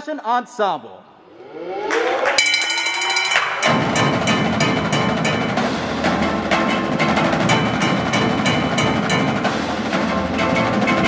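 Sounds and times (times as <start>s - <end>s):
ringing tones: 2.4s - 4.8s
percussion ensemble with drums: 2.4s - 11.0s.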